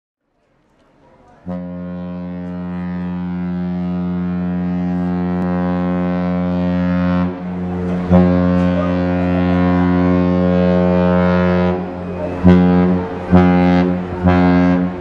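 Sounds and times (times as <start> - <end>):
ship's horn blast: 1.4 - 15.0.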